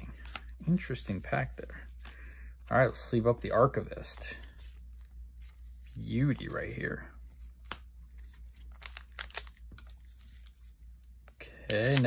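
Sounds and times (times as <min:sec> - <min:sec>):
cards and foil pack crinkling: 0:00.0 - 0:02.3, 0:04.0 - 0:12.0.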